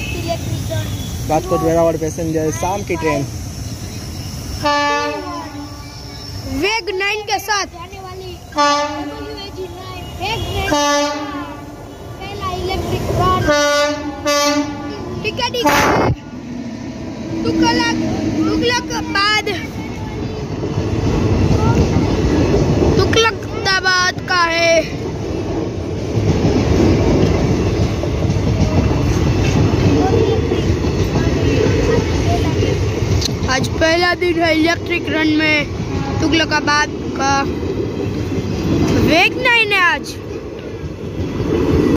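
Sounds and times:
train wheels rumbling on rails: 0:00.0 - 0:41.9
locomotive horn blast: 0:04.6 - 0:06.0, 0:08.6 - 0:12.1, 0:13.4 - 0:15.0.

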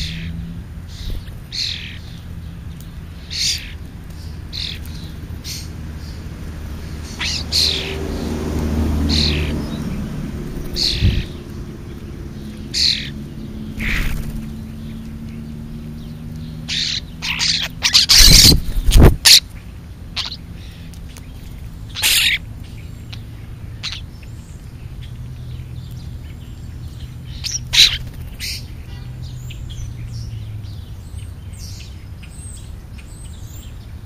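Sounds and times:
birds chirping: 0:00.0 - 0:34.0.

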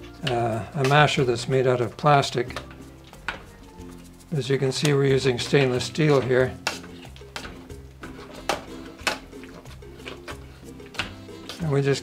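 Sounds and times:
background music: 0:00.0 - 0:12.0
potato masher knocking metal pot: 0:04.8 - 0:09.5.

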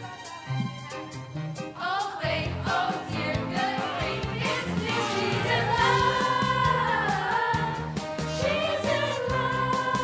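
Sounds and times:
girls singing together: 0:01.8 - 0:10.0.

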